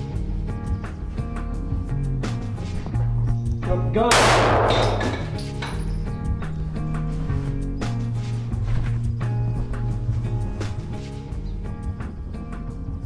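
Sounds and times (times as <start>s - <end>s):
background music with steady beat: 0.0s - 13.0s
loud pistol shot: 4.1s - 5.2s.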